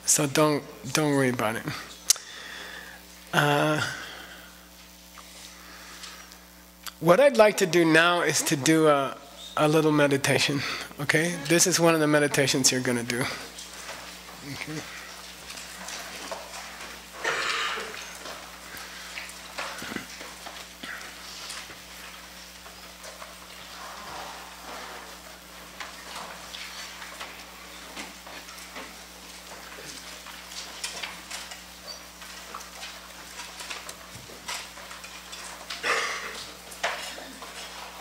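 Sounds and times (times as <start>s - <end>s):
soft handling clicks and rustles: 12.6s - 38.0s.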